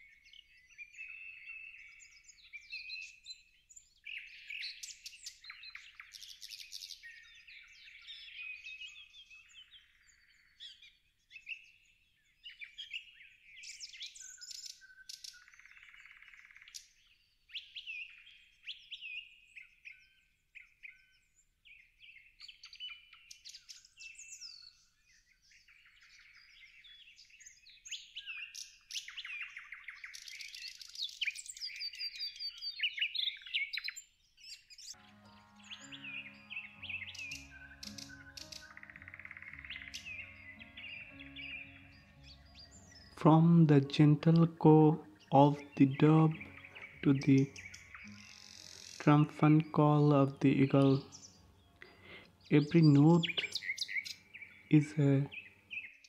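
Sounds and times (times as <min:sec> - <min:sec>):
songbirds chirping and singing: 0:00.0 - 0:56.0.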